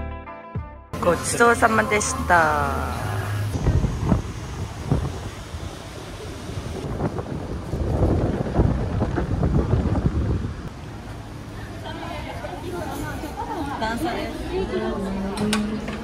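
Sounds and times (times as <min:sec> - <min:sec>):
wind buffeting microphone: 0:03.4 - 0:11.6.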